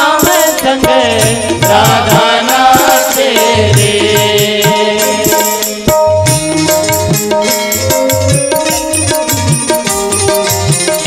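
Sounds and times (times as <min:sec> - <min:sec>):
devotional singing voice: 0:00.0 - 0:06.1
rhythmic percussion: 0:00.0 - 0:11.0
steady drum beat: 0:00.0 - 0:11.0.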